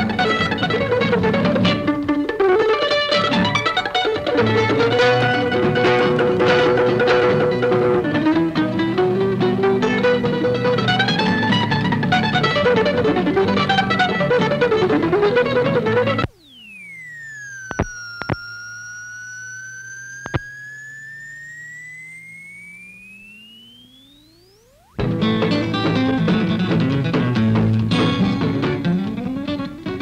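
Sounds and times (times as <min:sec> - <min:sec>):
short clicks: 0:16.2 - 0:24.9
gliding whistle-like tone: 0:16.2 - 0:25.0
fast acoustic guitar lead: 0:25.0 - 0:30.0.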